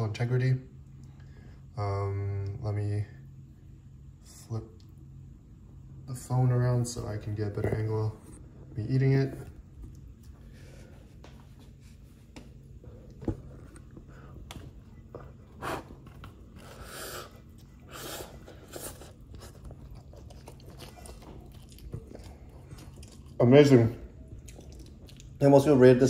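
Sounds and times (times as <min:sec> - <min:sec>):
person chewing soft food: 0:12.6 - 0:25.4.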